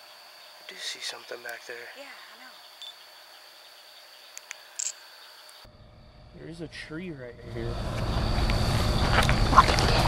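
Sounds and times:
high-pitched electronic whine: 4.8s - 10.0s
low rumble: 5.7s - 10.0s.

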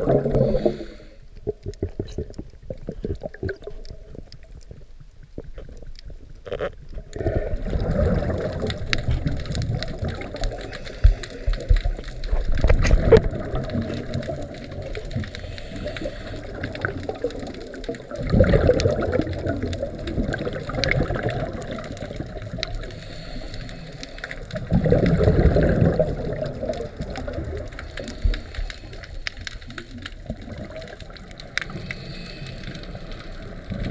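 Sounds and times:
scuba regulator breathing underwater: 0.0s - 1.4s, 10.2s - 12.4s, 15.1s - 17.3s, 22.7s - 26.5s, 27.8s - 30.0s, 31.6s - 33.9s
air bubbles gurgling: 0.0s - 33.9s.

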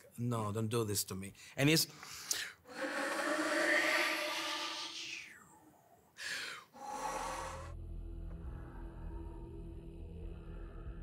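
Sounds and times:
breathy air-tone flute: 6.2s - 7.8s
low music bed with bass: 7.7s - 11.0s.

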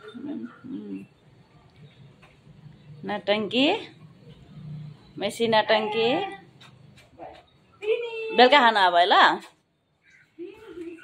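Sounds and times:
woman talking: 0.0s - 1.1s, 3.0s - 4.0s, 5.2s - 6.5s, 7.2s - 9.6s, 10.4s - 11.0s.

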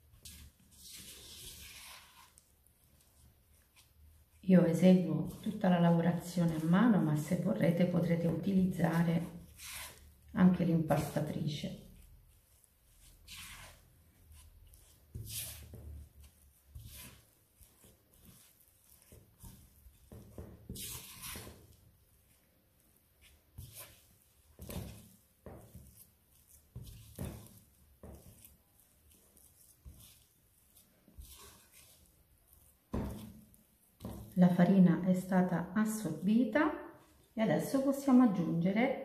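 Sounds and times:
spatula squelching sticky dough: 0.0s - 39.0s.

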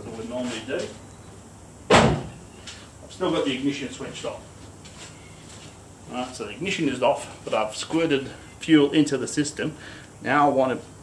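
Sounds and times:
sharp knock on car: 1.9s - 2.3s.

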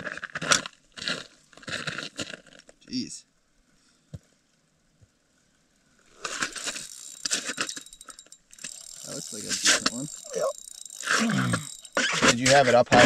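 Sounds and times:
fishing reel rattling and clicking: 6.2s - 13.0s.

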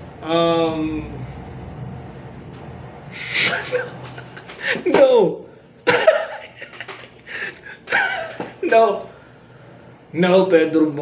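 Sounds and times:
low steady hum: 0.0s - 11.0s
man gasping: 4.6s - 4.9s, 7.2s - 7.9s.

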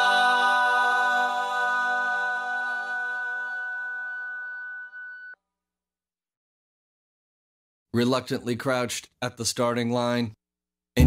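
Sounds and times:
background music held chord: 0.0s - 4.2s.

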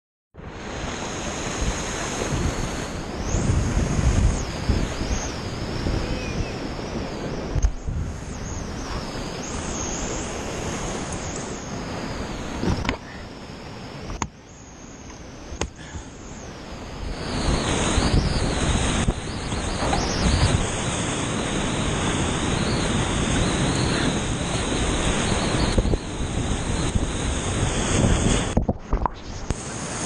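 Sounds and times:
wind buffeting microphone: 0.5s - 13.1s, 16.7s - 30.0s
rushing whitewater: 15.2s - 30.0s.

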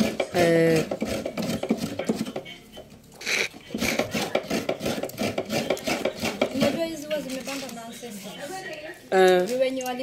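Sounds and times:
coconut grater rasping: 0.0s - 2.5s, 3.2s - 7.4s.

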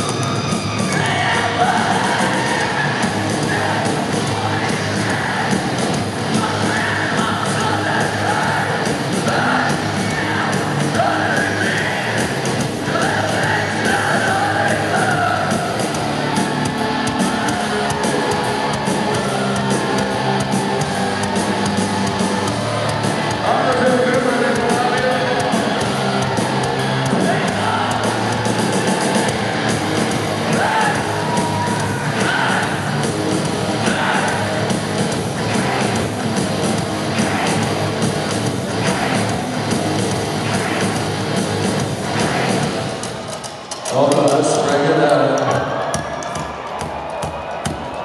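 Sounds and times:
heavy metal band playing live: 0.0s - 46.8s
crowd noise: 0.0s - 48.0s.

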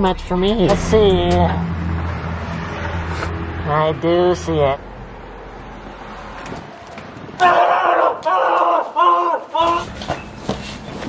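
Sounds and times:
person yelling: 7.4s - 10.0s.

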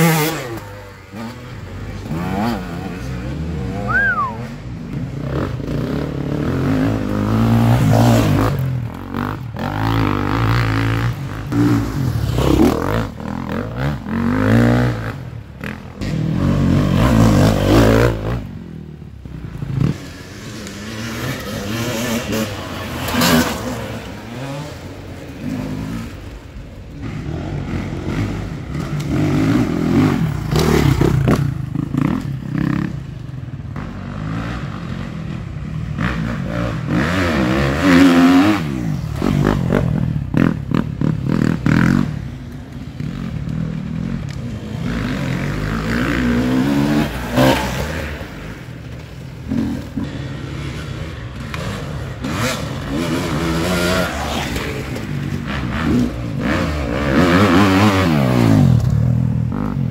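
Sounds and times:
motorcycle engines revving: 0.0s - 59.9s.

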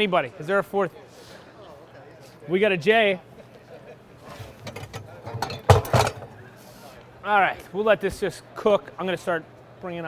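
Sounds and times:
cookware knocking and clattering: 4.6s - 6.3s.

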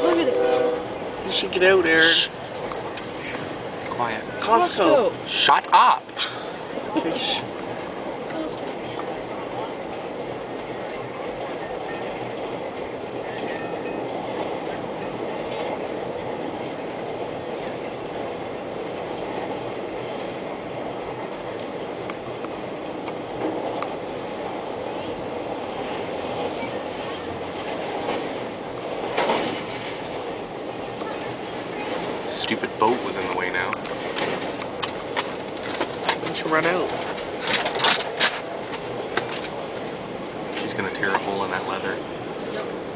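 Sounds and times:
train wheels rumbling on rail: 0.0s - 42.9s.

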